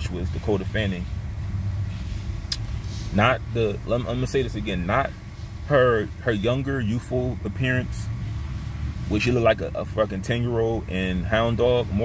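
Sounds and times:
car cabin low rumble: 0:00.0 - 0:12.0.

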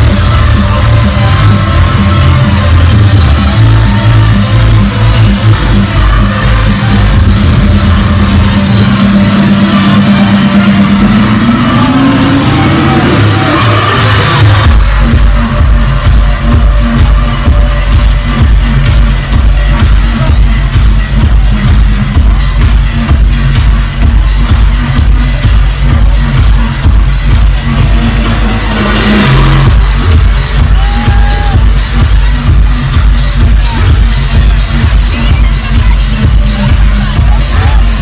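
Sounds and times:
electronic dance music: 0:00.0 - 0:38.0.

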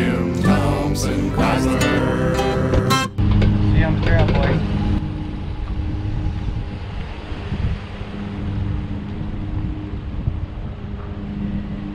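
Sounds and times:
diesel pickup engine droning: 0:00.0 - 0:11.9.

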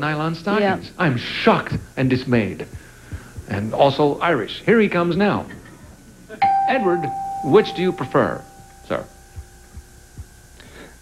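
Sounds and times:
low steady hum: 0:00.0 - 0:11.0
soft low thumps: 0:02.6 - 0:04.0, 0:06.5 - 0:11.0.

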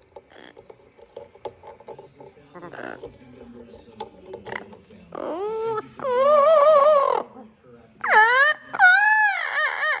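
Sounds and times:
parrot singing: 0:02.5 - 0:03.1, 0:04.5 - 0:07.4, 0:08.0 - 0:10.0.

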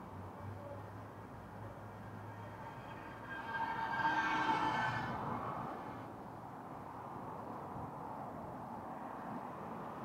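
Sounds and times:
vehicle engine whine passing: 0:01.3 - 0:06.2.

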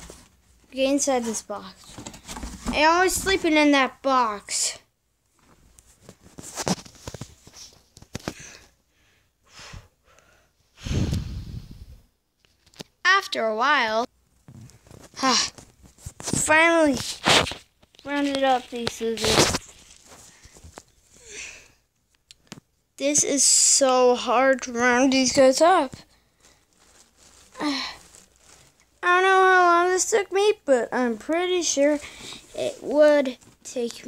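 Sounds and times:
soft toys rustling: 0:00.0 - 0:03.7, 0:04.5 - 0:08.7, 0:14.3 - 0:21.2, 0:24.9 - 0:29.8
breathy puff: 0:09.5 - 0:11.9.

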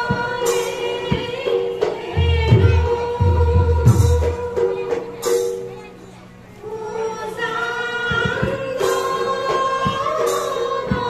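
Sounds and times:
group singing in unison: 0:00.0 - 0:05.0, 0:06.7 - 0:11.0.

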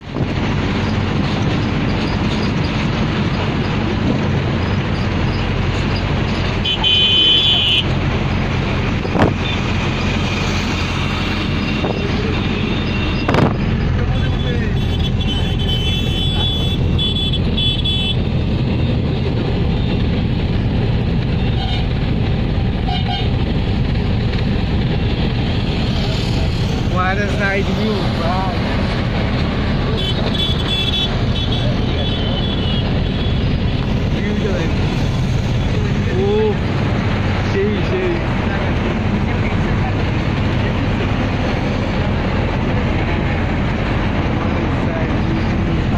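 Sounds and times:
vehicle engine and road noise: 0:00.0 - 0:45.9
car horns honking: 0:06.5 - 0:08.0, 0:11.7 - 0:18.3, 0:29.9 - 0:33.4.

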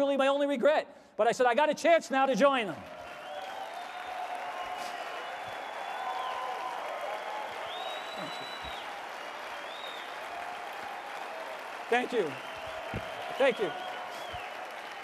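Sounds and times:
audience applauding: 0:02.6 - 0:15.0.

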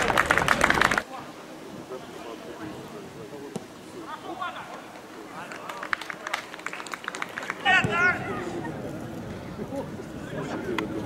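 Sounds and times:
players calling out: 0:07.4 - 0:11.0.

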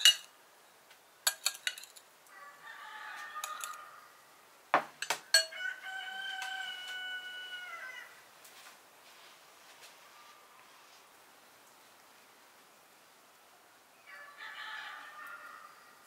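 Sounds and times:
metal spoon clinking on glass bowl: 0:00.0 - 0:00.3, 0:01.3 - 0:02.0, 0:03.4 - 0:03.8, 0:05.0 - 0:05.6
rooster crowing: 0:02.3 - 0:04.3, 0:05.3 - 0:08.3, 0:14.0 - 0:16.0.

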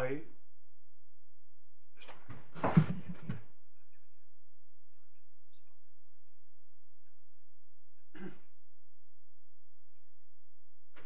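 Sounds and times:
person clearing throat: 0:08.1 - 0:08.5.

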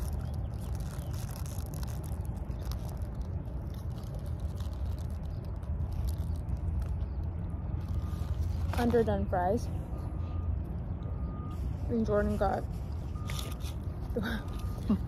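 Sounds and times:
paper wrappers crinkling: 0:00.0 - 0:09.3, 0:12.7 - 0:15.0
steady low rumble: 0:00.0 - 0:15.0.

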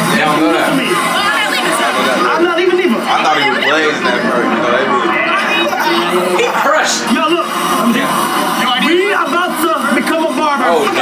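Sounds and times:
several voices talking: 0:00.0 - 0:11.0.

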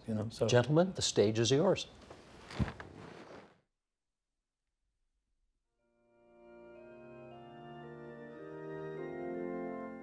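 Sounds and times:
clothing rustling and shuffling: 0:02.0 - 0:03.6.

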